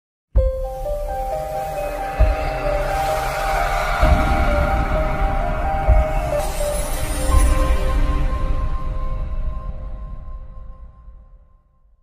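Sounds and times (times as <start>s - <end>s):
sustained synthesizer notes: 0.8s - 11.4s
whoosh: 1.3s - 9.3s
deep low rumble: 1.9s - 11.0s
low boom: 2.0s - 10.6s.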